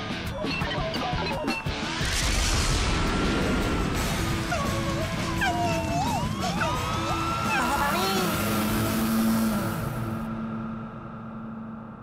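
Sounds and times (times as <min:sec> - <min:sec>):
cartoon background music: 0:00.0 - 0:01.9, 0:04.0 - 0:10.2
cartoon voices: 0:04.6 - 0:09.2
hiss: 0:07.6 - 0:10.2.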